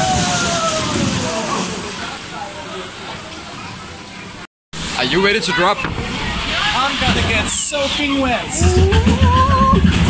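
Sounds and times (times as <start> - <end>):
water rushing and sloshing: 0.0 - 10.0.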